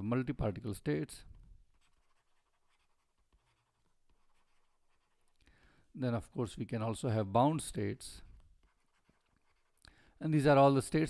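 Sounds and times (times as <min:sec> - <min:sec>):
stylus scratching and tapping on tablet: 0:00.4 - 0:05.4, 0:08.3 - 0:09.9.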